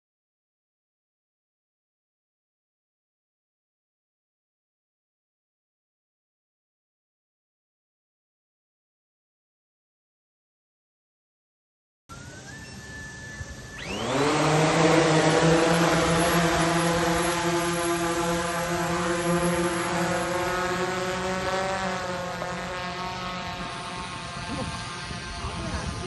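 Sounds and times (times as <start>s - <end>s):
drone propeller buzz: 12.1s - 26.0s
faint whine: 12.1s - 26.0s.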